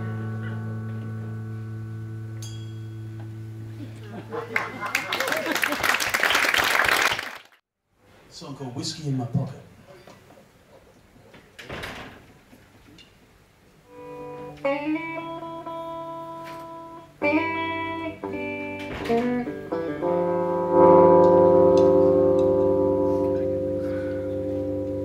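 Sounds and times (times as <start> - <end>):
electric guitar notes and chords: 0.0 - 4.7, 13.9 - 25.0.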